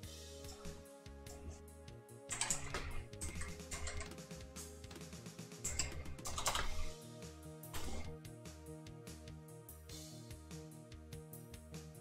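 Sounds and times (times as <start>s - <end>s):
background music: 0.0s - 12.0s
computer keyboard clatter: 2.3s - 4.2s, 5.6s - 6.9s.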